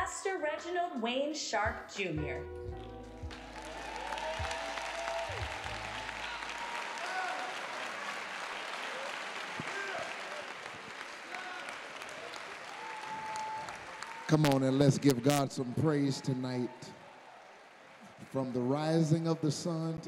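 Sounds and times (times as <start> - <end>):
crowd applauding and cheering: 2.7 - 20.0
scattered shouts: 6.2 - 7.7.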